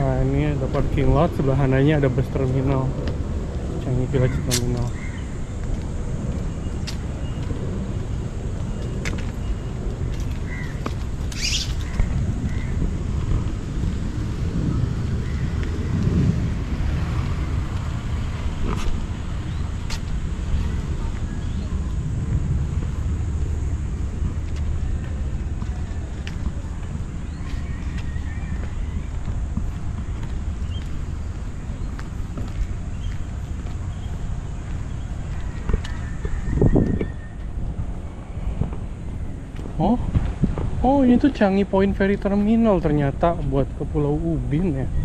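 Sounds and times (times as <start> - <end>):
low road rumble: 0.0 - 45.0.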